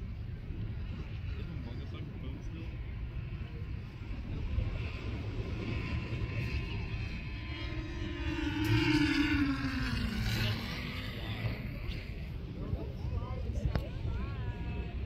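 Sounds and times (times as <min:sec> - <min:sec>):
low rumble of wind or surf: 0:00.0 - 0:15.0
passing motor drone: 0:00.0 - 0:15.0.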